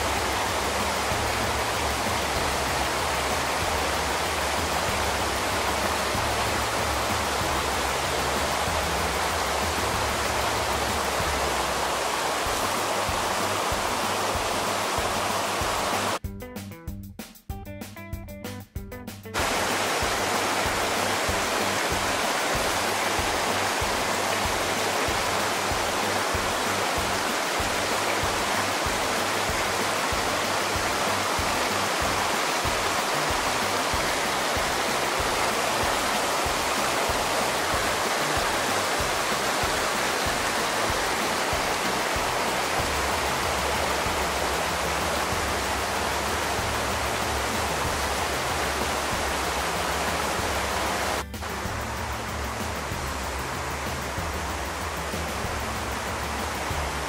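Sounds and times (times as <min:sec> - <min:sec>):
creek rushing over rocks: 0:00.0 - 0:16.2, 0:19.4 - 0:57.0
low background music: 0:00.0 - 0:57.0.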